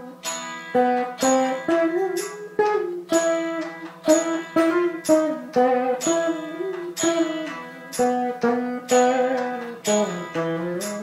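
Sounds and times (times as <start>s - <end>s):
plucked veena notes: 0.0s - 11.0s.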